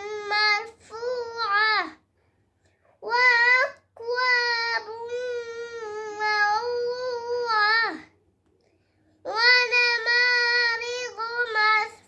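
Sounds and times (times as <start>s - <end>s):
girl chanting melodically: 0.0s - 2.0s, 9.2s - 12.0s.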